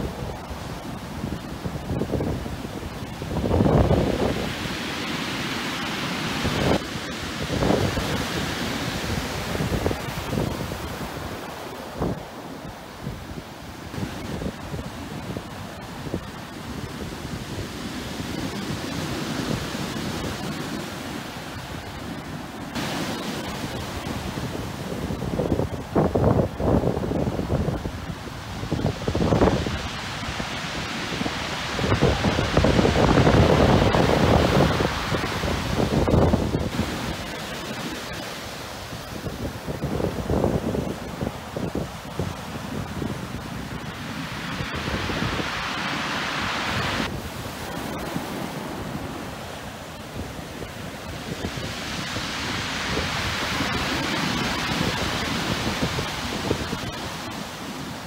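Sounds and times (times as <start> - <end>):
wind buffeting microphone: 0.0 - 5.0, 6.4 - 12.4, 13.0 - 57.6
surf crashing on shore: 0.0 - 58.0.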